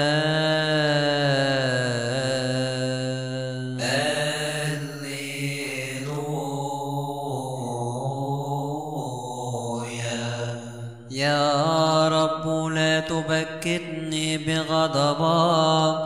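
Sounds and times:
voice chanting a long vowel: 0.0 - 16.0.

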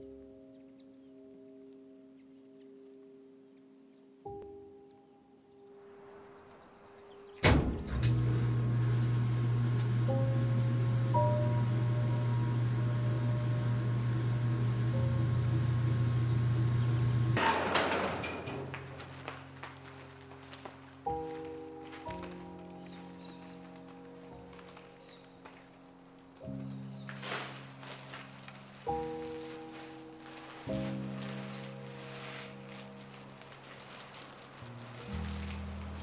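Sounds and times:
soft sustained music tones: 0.0 - 36.0
garage door stopping rush: 7.5 - 19.8
garage door motor hum: 7.7 - 19.5
garage door clunk: 16.7 - 19.7.

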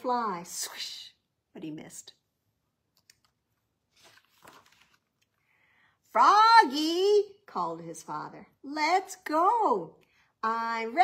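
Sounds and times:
paper page turning: 3.1 - 5.4.

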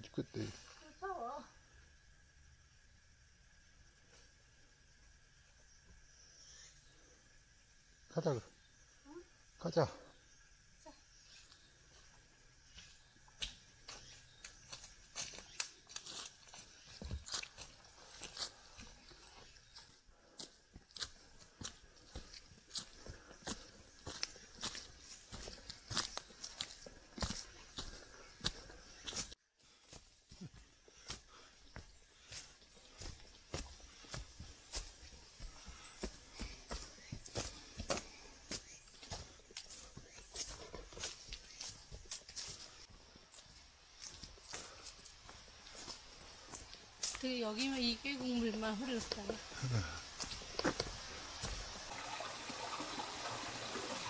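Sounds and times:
footsteps on dry leaves: 13.3 - 51.9.

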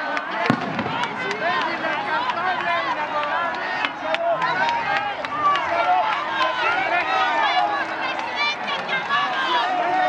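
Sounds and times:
crowd calling and shouting: 0.0 - 10.0.

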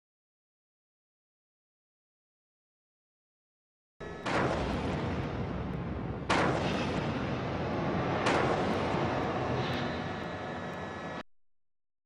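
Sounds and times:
explosion boom and rumble: 4.0 - 11.2.

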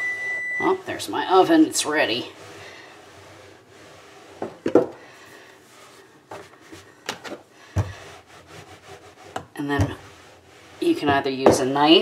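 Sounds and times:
rolling pin rubbing on dough: 1.0 - 4.7, 7.6 - 12.0
soft knocks of rolling pin: 10.9 - 12.0.

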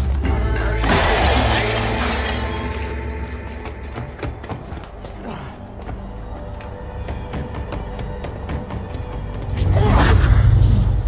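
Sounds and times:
glass shattering: 0.8 - 4.1.

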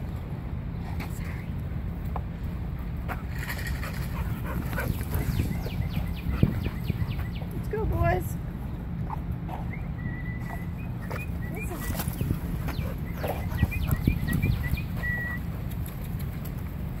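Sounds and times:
dogs scuffling on dirt: 0.8 - 17.0
bird chirping: 3.9 - 8.8, 9.6 - 16.5.

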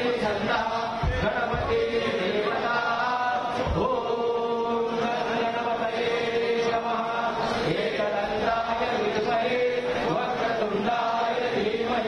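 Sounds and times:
voices chanting in unison: 0.0 - 12.0.

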